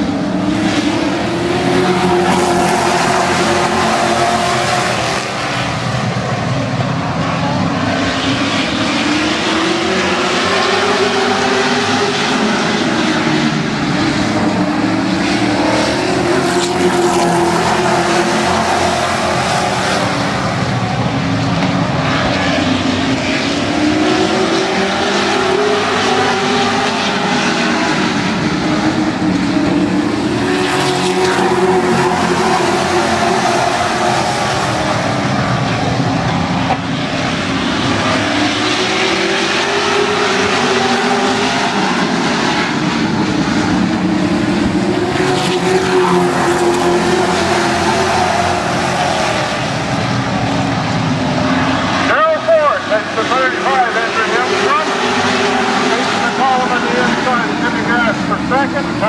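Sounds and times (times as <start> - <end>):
race car engines at speed: 0.0 - 59.0.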